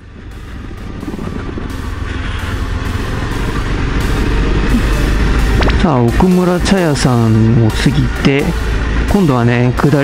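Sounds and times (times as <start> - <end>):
wind noise: 0.0 - 5.9
motorcycle engine: 0.0 - 10.0.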